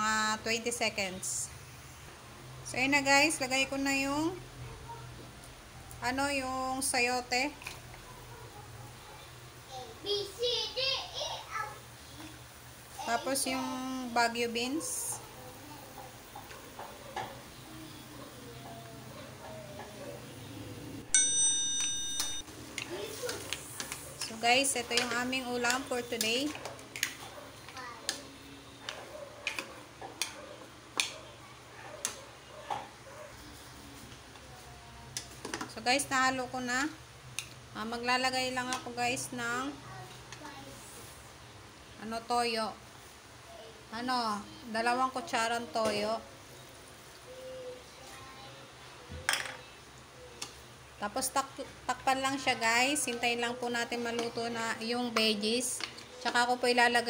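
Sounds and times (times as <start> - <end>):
electronic bell chime: 21.1 - 22.4.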